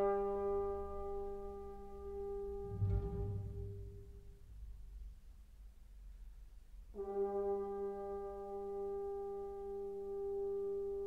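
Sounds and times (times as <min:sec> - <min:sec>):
orchestra holding long note: 0:02.4 - 0:04.8
fainter low note: 0:02.5 - 0:05.2.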